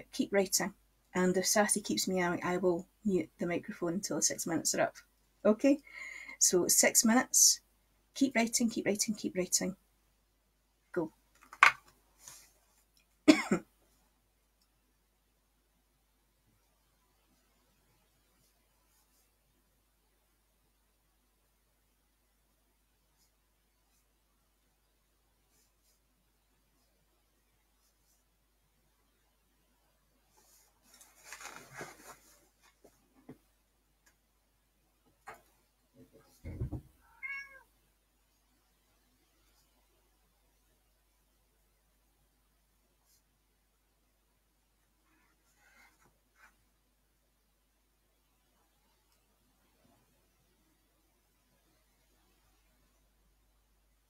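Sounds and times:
faint breath: 5.8s - 6.4s
woman coughing: 13.3s - 13.7s
dull low thud: 36.4s - 37.0s
cat meowing: 37.0s - 37.7s.

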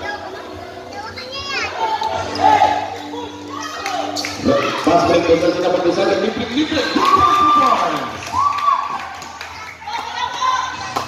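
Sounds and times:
voices and shouts: 0.0s - 11.0s.

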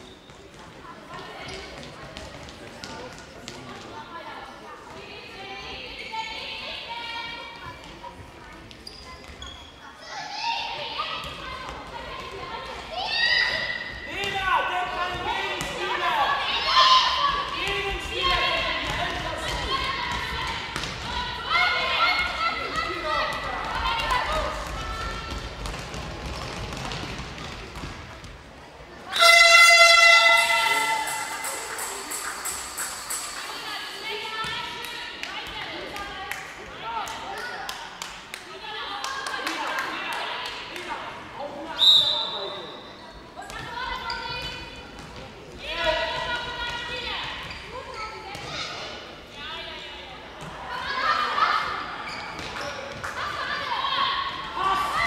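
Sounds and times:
ball bouncing on hall floor: 17.5s - 21.3s, 22.7s - 28.5s
echoing voices: 28.8s - 41.7s
loud horn: 29.1s - 31.4s
referee's whistle blast: 29.2s - 31.9s.

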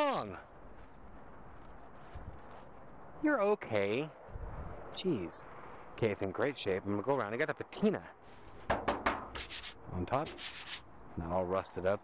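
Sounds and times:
footsteps rustling through grass: 0.5s - 3.2s, 8.2s - 8.7s.

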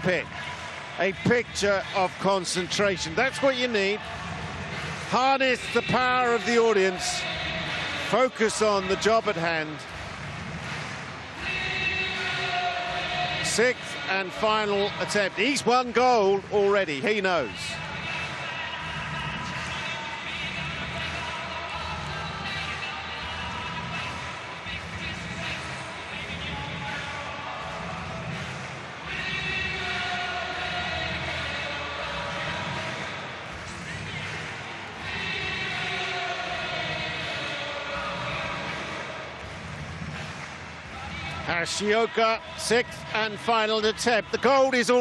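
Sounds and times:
stadium crowd hubbub: 0.0s - 45.0s.

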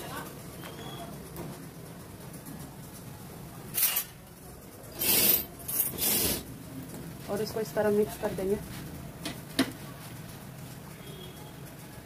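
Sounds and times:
steel spoon scraping: 4.9s - 6.5s.

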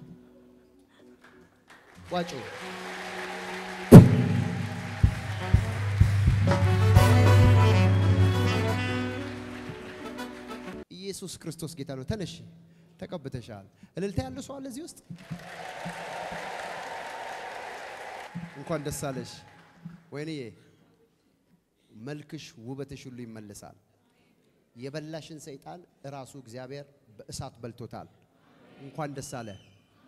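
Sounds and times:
church keyboard music: 0.0s - 10.8s
congregation applauding: 1.2s - 10.8s, 15.2s - 19.8s.

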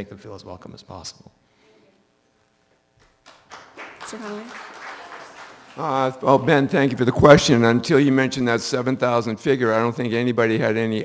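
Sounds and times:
audience applause: 3.2s - 7.7s.

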